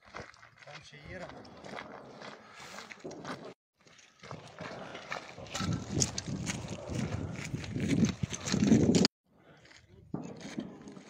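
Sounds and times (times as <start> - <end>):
footsteps crunching over rubble: 0.0 - 11.0.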